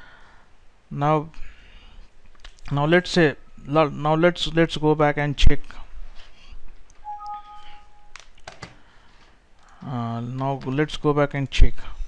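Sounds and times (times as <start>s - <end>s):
two-tone system alert chime: 7.0s - 8.2s.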